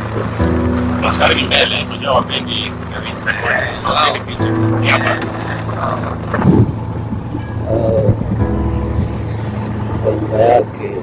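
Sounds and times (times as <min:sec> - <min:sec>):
music playing: 0:00.0 - 0:11.0
vehicle driving hum: 0:00.0 - 0:11.0.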